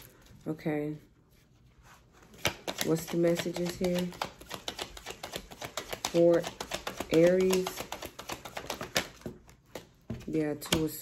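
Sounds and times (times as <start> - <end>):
cards being shuffled: 1.9 - 11.0.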